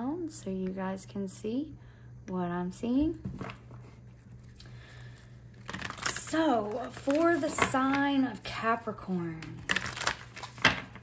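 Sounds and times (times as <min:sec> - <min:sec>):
steady low hum: 0:00.0 - 0:09.7.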